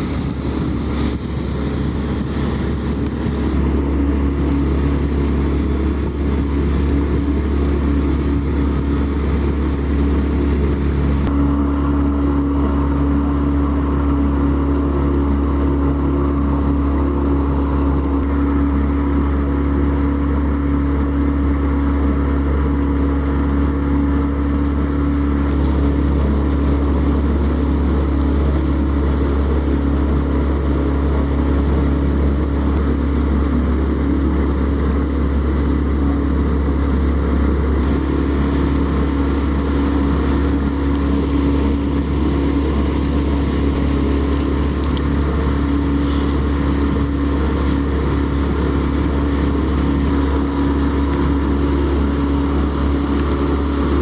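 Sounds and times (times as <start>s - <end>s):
boat engine droning: 0.0s - 54.0s.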